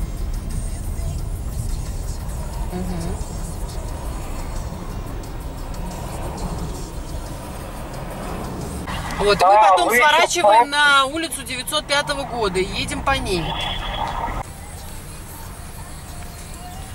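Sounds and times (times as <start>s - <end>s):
car road and engine rumble: 0.0s - 16.9s.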